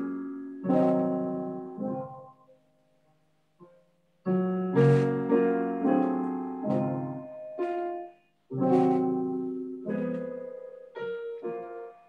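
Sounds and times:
piano chords ringing: 0.0s - 2.6s, 4.3s - 12.0s.

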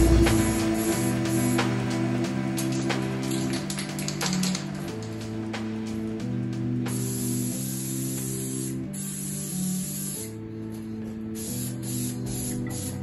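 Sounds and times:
background music with sustained chords: 0.0s - 13.0s
spray paint can hissing: 0.0s - 13.0s.

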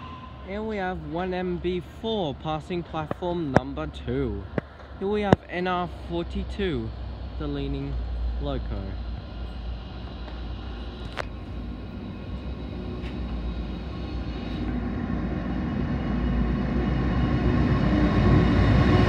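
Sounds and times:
diesel locomotive engine droning: 0.0s - 19.0s.

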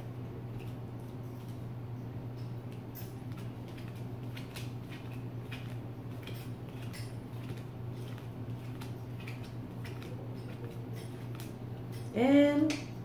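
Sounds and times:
steady low hum: 0.0s - 13.0s
playing cards being shuffled: 2.7s - 11.6s.

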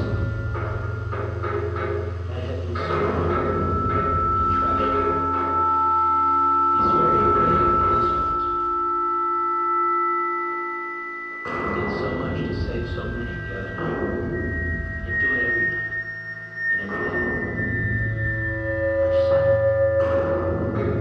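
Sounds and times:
electronic drone tones: 0.0s - 21.0s
high sustained tone: 0.0s - 21.0s
low hum: 0.0s - 21.0s.

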